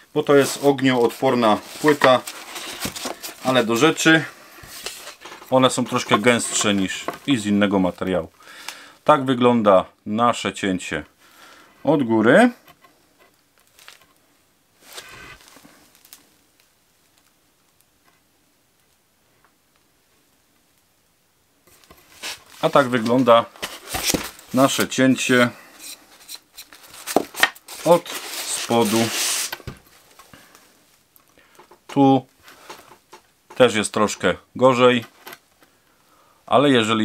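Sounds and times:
faint handling sounds: 0.0 - 8.2, 11.8 - 14.2, 14.8 - 18.3, 21.6 - 35.8
chipboard scraping: 0.3 - 3.9, 22.0 - 29.8
chipboard pieces rustling: 0.3 - 7.4, 21.7 - 30.3
panel rubbing hiss: 27.8 - 29.7.

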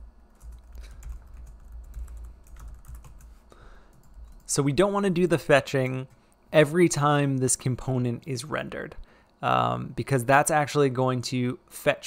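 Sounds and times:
keyboard typing: 0.4 - 4.5.

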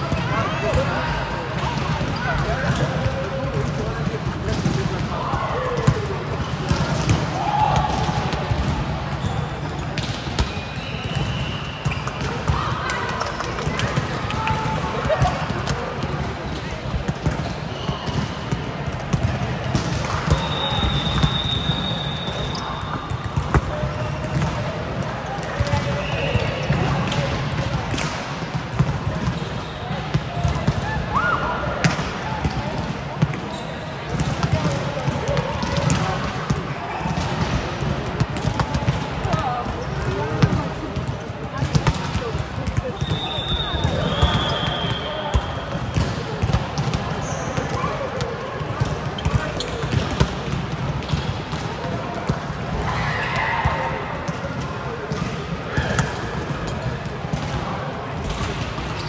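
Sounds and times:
players' voices: 0.0 - 59.0
volleyballs hit and bouncing: 0.0 - 59.0.

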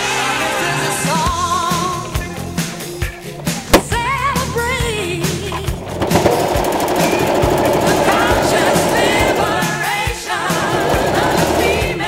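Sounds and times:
pop music with singing: 0.0 - 12.0
sewing machine stitching: 5.2 - 12.0.

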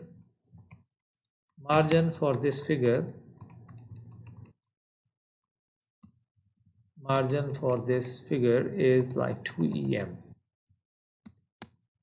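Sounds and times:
computer keyboard typing: 0.4 - 4.7, 5.8 - 8.0, 8.9 - 11.8.

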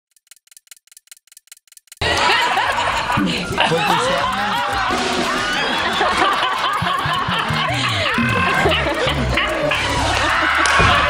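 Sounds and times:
rapid clock ticking: 0.1 - 11.0.

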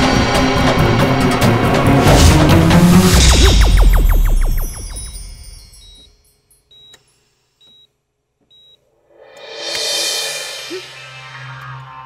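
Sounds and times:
heart monitor beeping: 5.8 - 6.1, 6.7 - 7.9, 8.5 - 8.8.

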